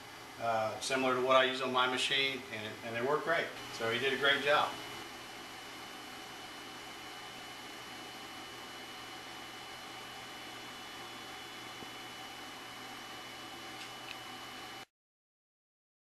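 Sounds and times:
faint high whine: 0:00.0 - 0:14.9
room tone hiss: 0:00.0 - 0:14.9.

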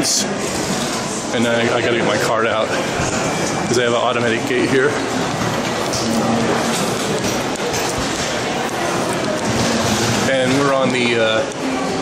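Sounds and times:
hubbub of voices in large hall: 0:00.0 - 0:12.0.

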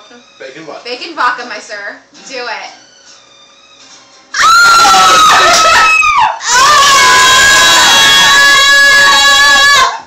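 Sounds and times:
high-pitched human scream: 0:04.3 - 0:10.0.

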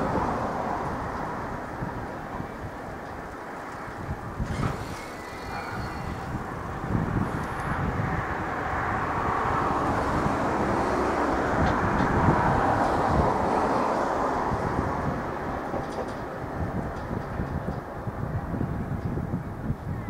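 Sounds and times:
electric train rumbling: 0:00.0 - 0:20.0.

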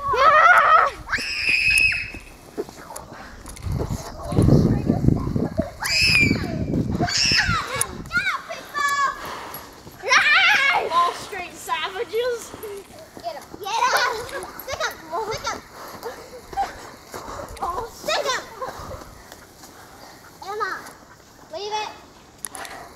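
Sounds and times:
children shouting and screaming: 0:00.0 - 0:02.5, 0:04.0 - 0:22.1
low rumbling microphone noise: 0:01.9 - 0:08.4.

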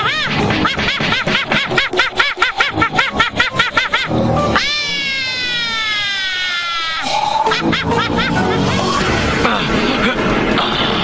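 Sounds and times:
cartoon monkey hooting laughter: 0:00.0 - 0:09.1
background music: 0:00.0 - 0:11.0.

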